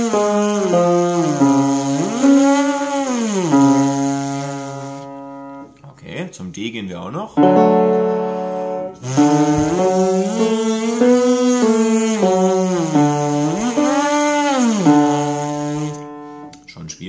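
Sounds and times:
brass player buzzing lips: 0:00.0 - 0:05.7, 0:08.1 - 0:16.6
keyboard reference note: 0:07.4 - 0:16.5.

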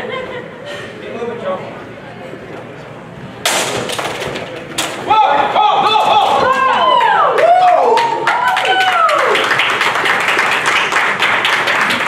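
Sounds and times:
people shouting excitedly: 0:05.1 - 0:07.9.

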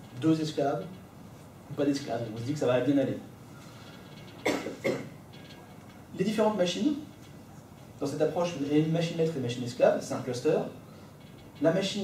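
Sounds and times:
person coughing: 0:04.4 - 0:05.2.

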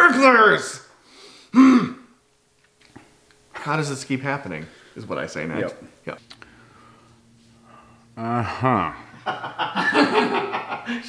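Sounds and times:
man grunting: 0:08.2 - 0:09.0.

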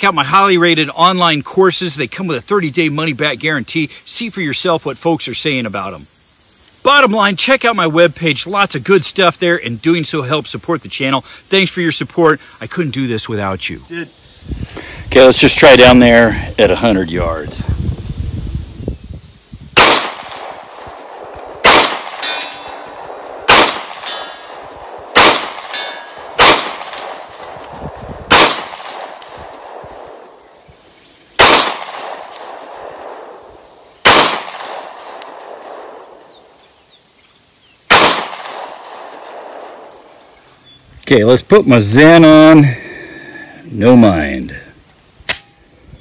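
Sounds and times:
pistol shots: 0:19.8 - 0:27.5, 0:28.3 - 0:30.2, 0:31.4 - 0:33.3, 0:34.0 - 0:36.0, 0:37.9 - 0:39.8.

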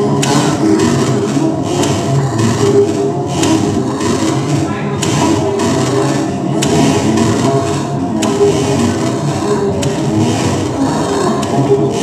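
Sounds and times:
layered synthesizer tones: 0:00.0 - 0:12.0.

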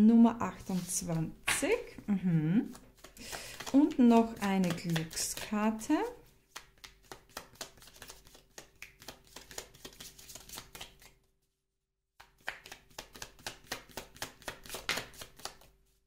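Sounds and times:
cards being shuffled: 0:00.6 - 0:01.9, 0:02.6 - 0:11.2, 0:12.2 - 0:15.8.

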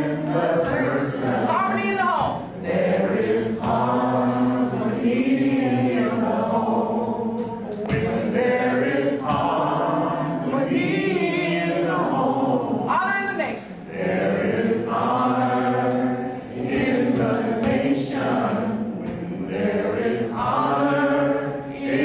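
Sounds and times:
group singing a cappella: 0:00.0 - 0:22.0.

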